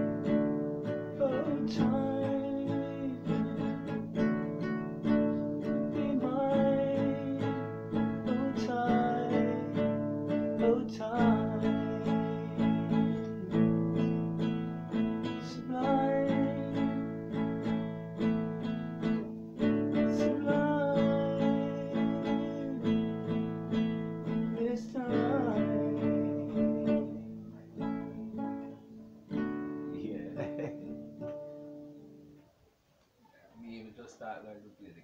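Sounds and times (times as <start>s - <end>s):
acoustic guitar strumming: 0.0s - 32.5s
man singing: 1.1s - 4.2s, 5.0s - 14.1s, 14.9s - 17.7s, 19.9s - 28.8s.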